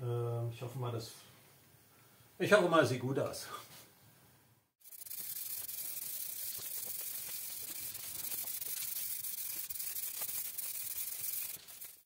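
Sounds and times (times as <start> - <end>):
spray paint can hissing: 4.8 - 12.0.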